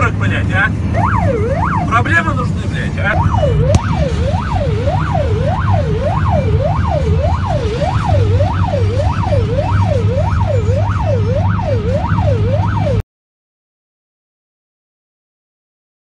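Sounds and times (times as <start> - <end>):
low engine rumble: 0.0 - 12.9
siren wailing: 0.6 - 13.0.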